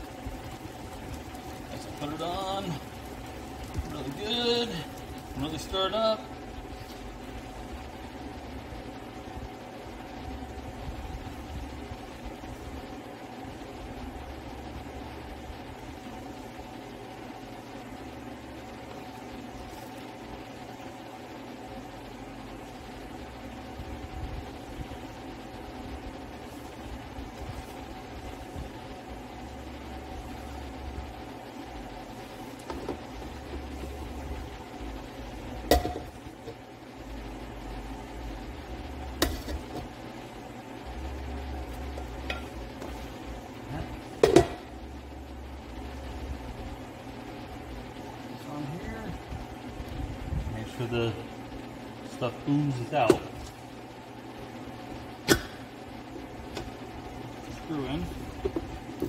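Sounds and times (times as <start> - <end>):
steady background hum: 0.0 - 59.0.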